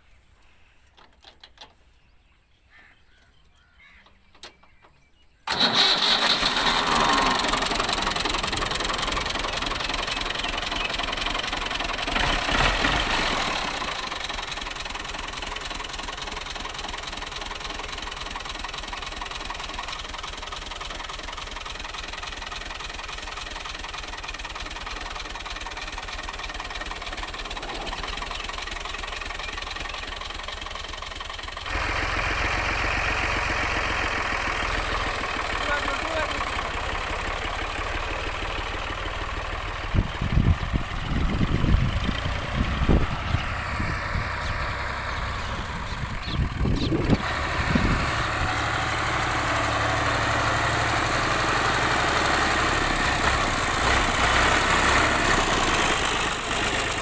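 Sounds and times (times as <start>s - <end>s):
tractor diesel engine running: 0.9s - 57.0s.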